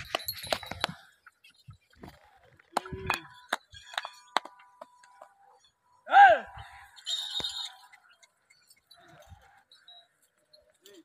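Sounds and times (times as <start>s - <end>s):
light metallic clinks: 0.0s - 1.8s, 7.0s - 11.0s
man shouting: 6.1s - 6.6s.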